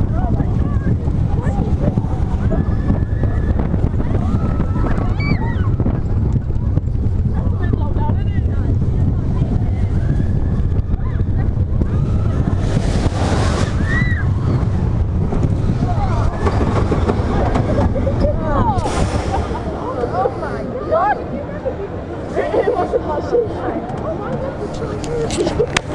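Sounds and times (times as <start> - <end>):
roller coaster rumbling on track: 0.0 - 25.9
wind buffeting microphone: 0.0 - 25.9.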